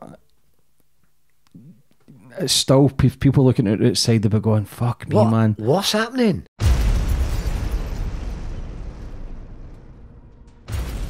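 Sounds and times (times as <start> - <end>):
explosion boom with low rumble: 6.6 - 11.0.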